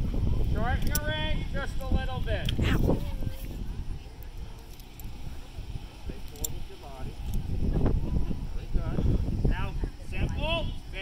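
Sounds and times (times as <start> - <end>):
low steady rumble: 0.0 - 11.0
faint indistinct talking: 2.4 - 11.0.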